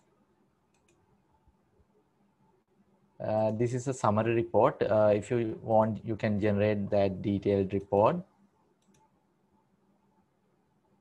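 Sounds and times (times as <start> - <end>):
computer mouse clicking: 0.0 - 1.1, 8.8 - 9.2.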